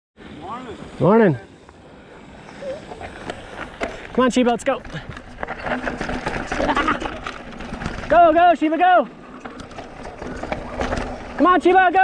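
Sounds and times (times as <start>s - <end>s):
bike tyres crunching over stones: 2.4s - 12.0s
bike knocking and rattling: 2.5s - 12.0s.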